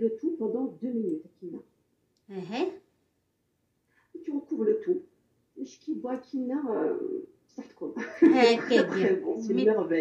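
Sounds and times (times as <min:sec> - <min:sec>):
person talking: 0:04.2 - 0:10.0.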